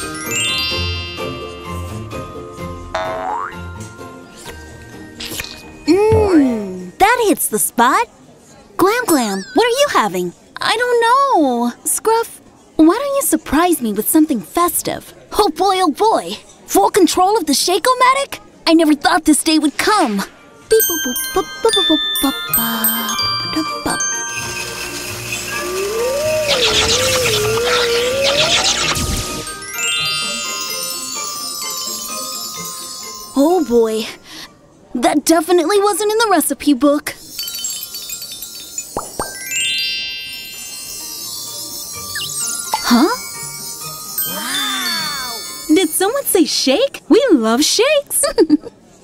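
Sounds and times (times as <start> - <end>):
cartoon background music: 0.0 - 3.8, 20.7 - 33.7, 39.0 - 45.9
sparkly crackle: 24.3 - 31.1
rising pitch sound effect: 25.4 - 29.4.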